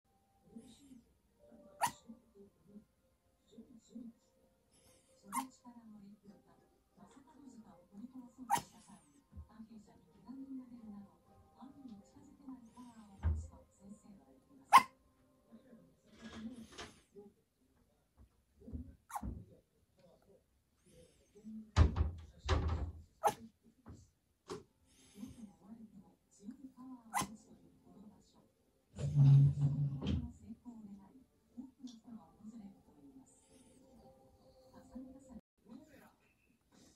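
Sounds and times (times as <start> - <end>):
small dog yipping: 1.7 - 2.1, 5.3 - 5.5, 8.5 - 8.8, 14.7 - 14.9, 19.1 - 19.3, 27.1 - 27.3.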